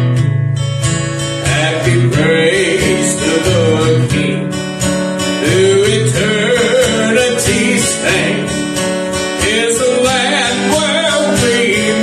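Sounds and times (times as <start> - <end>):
acoustic guitar strumming: 0.0 - 12.0
man singing: 1.4 - 4.6, 5.4 - 12.0.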